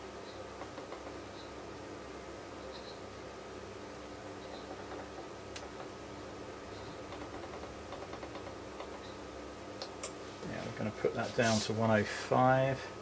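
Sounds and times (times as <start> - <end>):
electrical hum: 0.0 - 13.0.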